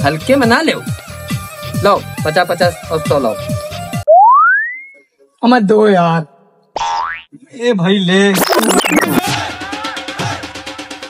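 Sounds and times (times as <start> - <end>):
rising boing: 4.1 - 5.0.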